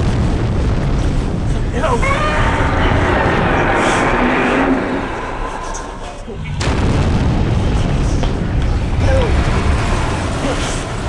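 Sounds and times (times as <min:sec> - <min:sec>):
deep rumbling explosion booms: 0:00.0 - 0:11.0.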